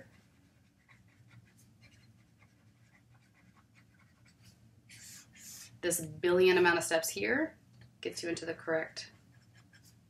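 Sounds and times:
marker scratching on paper: 0:00.0 - 0:05.8, 0:09.1 - 0:10.0.

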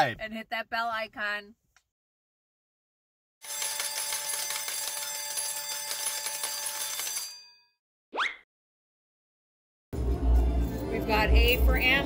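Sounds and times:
bell ringing: 0:03.4 - 0:07.8.

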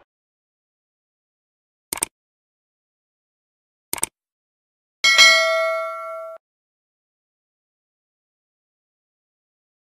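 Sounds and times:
notification bell chime: 0:05.1 - 0:06.4.

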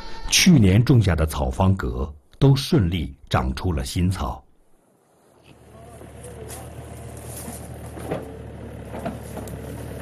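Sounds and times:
excavator engine idling: 0:05.4 - 0:10.0.

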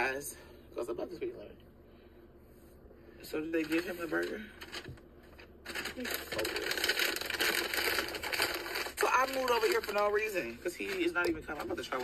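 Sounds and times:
paper bag rustling and crinkling: 0:03.4 - 0:12.0.

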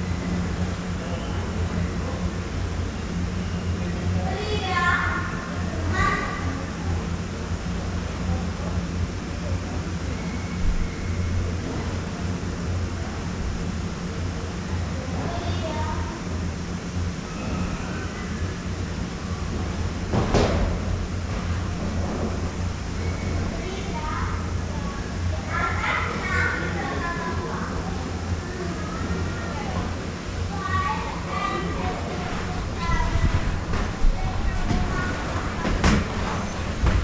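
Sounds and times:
conveyor belt lift humming: 0:00.0 - 0:37.0
faint voices: 0:21.1 - 0:37.0.

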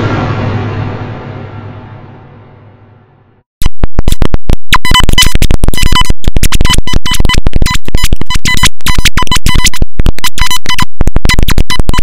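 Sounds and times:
beep-like tone: 0:03.6 - 0:12.0
distorted stuttering noise: 0:03.6 - 0:12.0.

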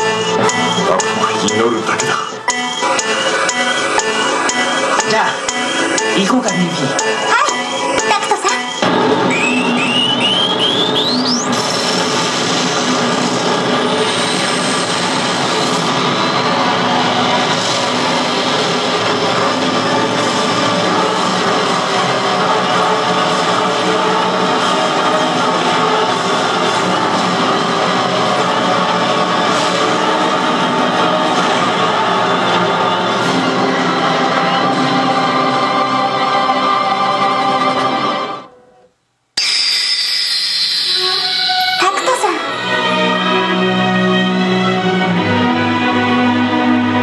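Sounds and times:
dramatic machine music: 0:00.0 - 0:38.4.

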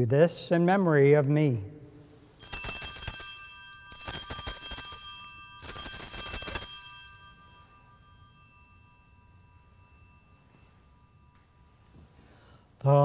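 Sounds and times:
small hand bells ringing: 0:02.4 - 0:12.8.

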